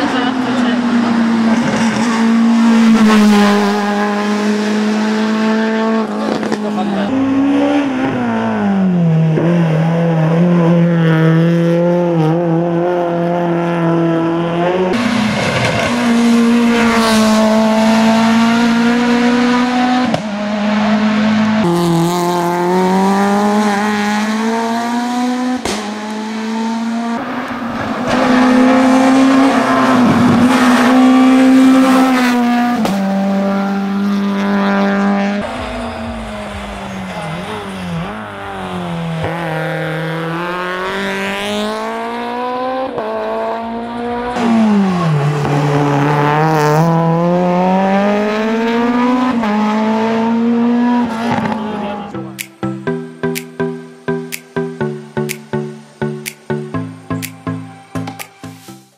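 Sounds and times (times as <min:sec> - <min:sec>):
race car engine revving: 0:00.0 - 0:52.2.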